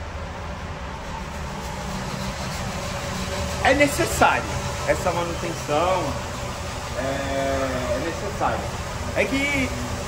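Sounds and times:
air-handling fans running: 0.0 - 10.0.

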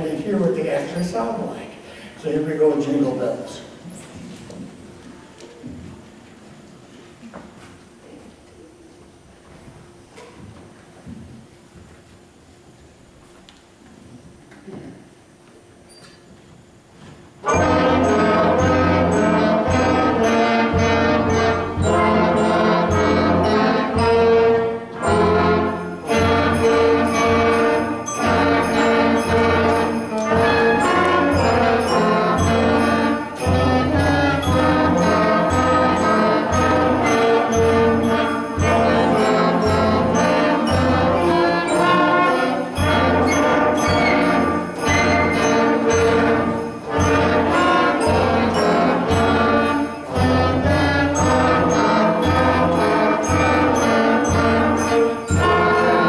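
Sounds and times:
school concert band playing: 0.0 - 8.0, 16.8 - 56.0.

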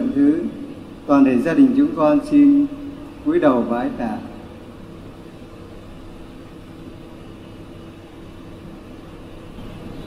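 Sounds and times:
electric fans humming: 0.0 - 10.0
sound system hum: 0.0 - 10.0.

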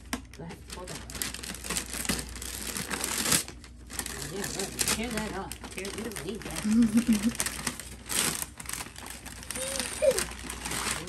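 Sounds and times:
paper crinkling: 0.4 - 11.0
wrapping paper ripping: 0.6 - 11.0.

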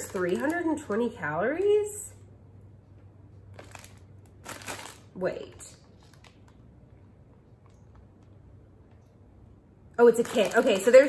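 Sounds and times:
plastic bag crinkling: 0.0 - 1.9, 3.4 - 7.0, 10.0 - 11.0.

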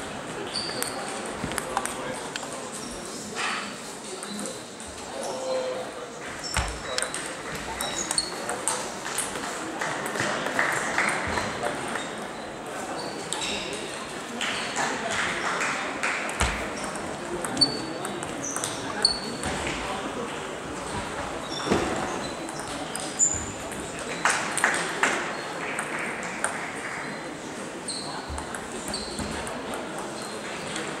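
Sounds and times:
voices talking in large hall: 0.0 - 31.0
table tennis ball clicks: 6.6 - 10.2.

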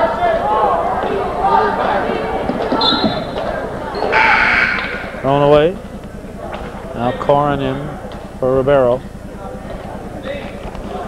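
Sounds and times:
voices of players and spectators: 0.0 - 11.0
basketball bouncing on wooden floor: 2.5 - 3.5
loud shout rising in pitch: 3.9 - 5.2
short high squeak: 4.0 - 5.1.

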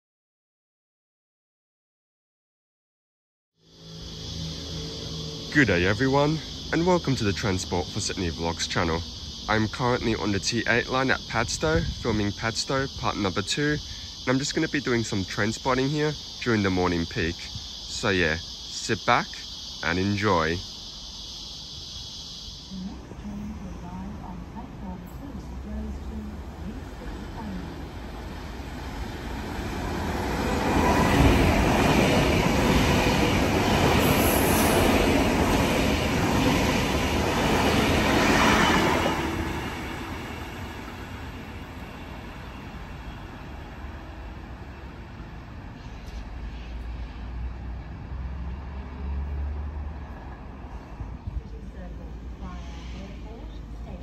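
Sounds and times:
electric train passing: 3.6 - 54.0.

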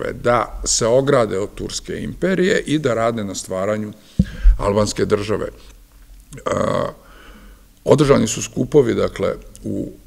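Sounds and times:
man speaking: 0.0 - 5.7, 6.3 - 7.0, 7.8 - 10.0.

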